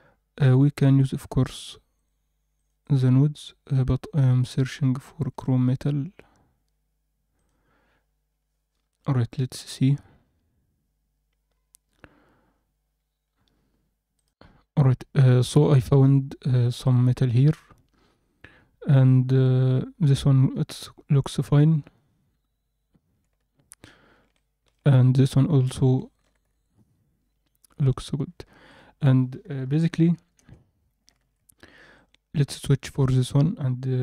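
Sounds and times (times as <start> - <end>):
man's voice: 14.8 - 17.7, 18.8 - 21.9, 24.8 - 26.1, 27.7 - 28.4, 29.0 - 30.2, 32.4 - 34.0.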